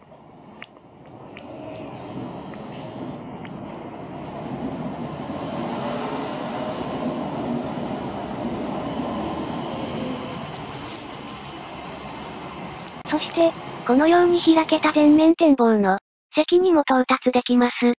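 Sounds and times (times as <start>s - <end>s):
rubber-tyred train passing: 0.1s - 15.2s.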